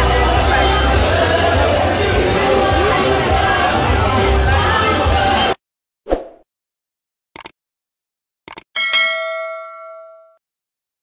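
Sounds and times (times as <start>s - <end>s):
mouse double click: 7.4s - 7.6s, 8.5s - 8.7s
bell ding: 8.8s - 10.4s.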